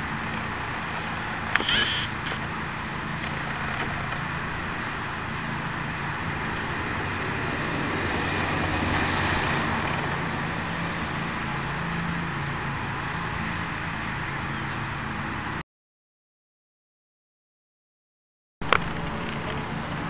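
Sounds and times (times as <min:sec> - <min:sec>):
car passing: 0:00.0 - 0:15.6
road noise: 0:00.0 - 0:15.6, 0:18.6 - 0:20.0.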